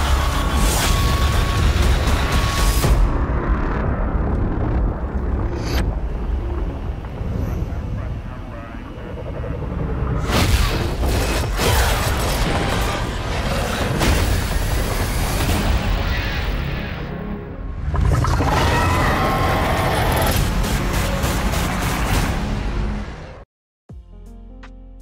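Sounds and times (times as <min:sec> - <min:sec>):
dramatic film music: 0:00.0 - 0:25.0.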